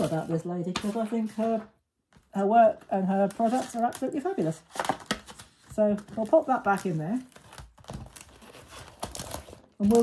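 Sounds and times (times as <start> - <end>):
paper rustling and crinkling: 0.0 - 10.0.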